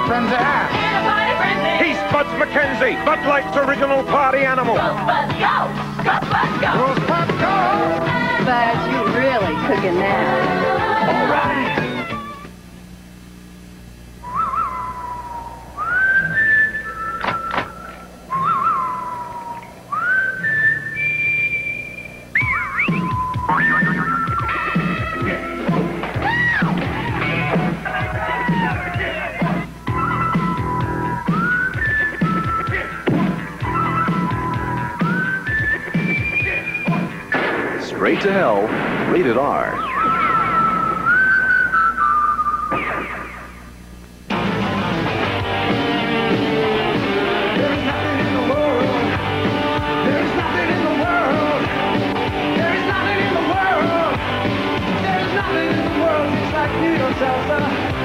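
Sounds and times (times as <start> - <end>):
person whistling a tune: 14.2 - 25.4, 29.8 - 33.0, 33.6 - 37.1, 39.9 - 42.7.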